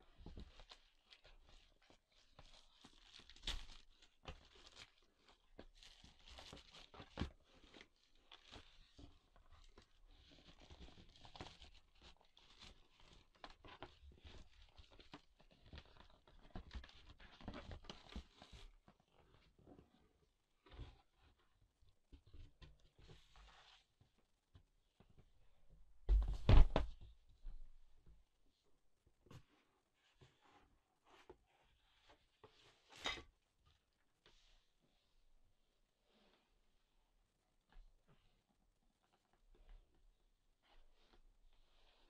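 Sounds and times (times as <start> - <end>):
plastic wrap crinkling and tearing: 0.4 - 8.9, 9.6 - 16.8.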